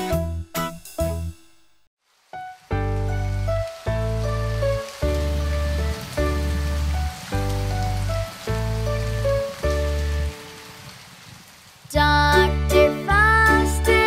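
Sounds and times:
rain pattering: 0:02.0 - 0:14.0.

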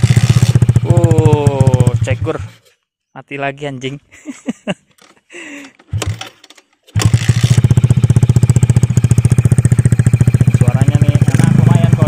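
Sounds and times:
motorcycle engine sputtering and running: 0:00.0 - 0:02.7, 0:05.7 - 0:12.0.

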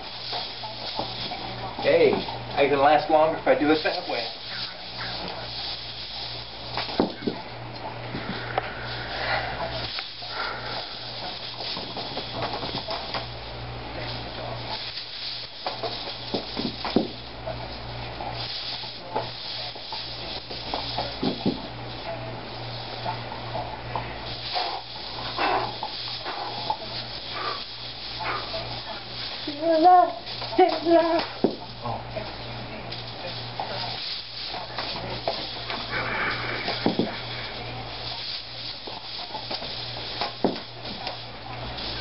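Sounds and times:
hula hoop knocking and rubbing: 0:00.0 - 0:42.0
low electrical hum and hiss: 0:00.0 - 0:42.0.

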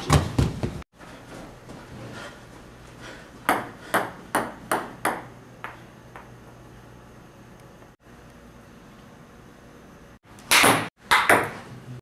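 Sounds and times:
table tennis ball bouncing: 0:03.4 - 0:06.3, 0:10.4 - 0:11.6.

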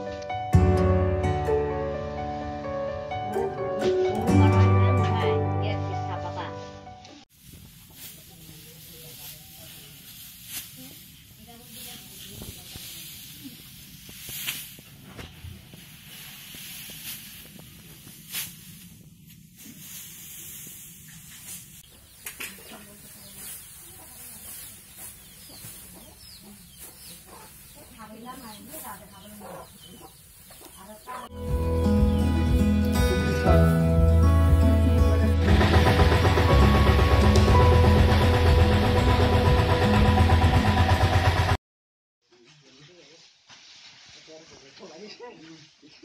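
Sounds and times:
loud instrumental music: 0:00.0 - 0:06.2, 0:31.3 - 0:41.6
dry straw rustling and swishing: 0:05.6 - 0:35.6, 0:42.3 - 0:46.0
knocks of rice sheaves handled: 0:07.3 - 0:33.8
small birds chirping: 0:21.0 - 0:31.3
hens clucking: 0:21.9 - 0:31.3.

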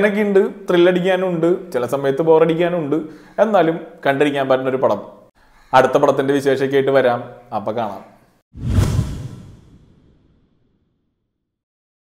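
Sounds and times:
deep whoosh: 0:08.6 - 0:10.5.

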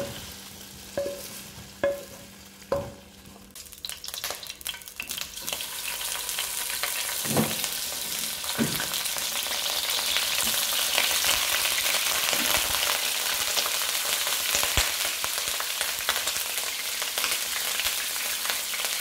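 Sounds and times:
fish sizzling in hot oil: 0:00.0 - 0:19.0.

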